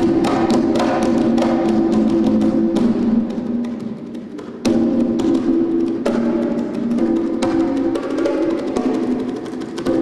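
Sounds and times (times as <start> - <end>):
conga drums played by hand: 0.0 - 10.0.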